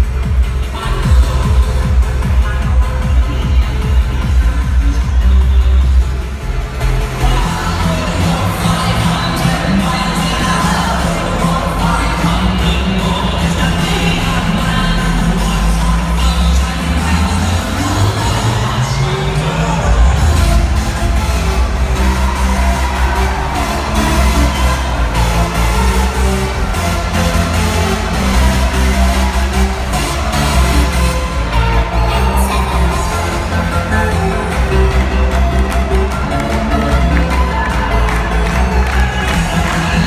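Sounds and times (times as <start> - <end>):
electronic dance music: 0.0 - 40.0.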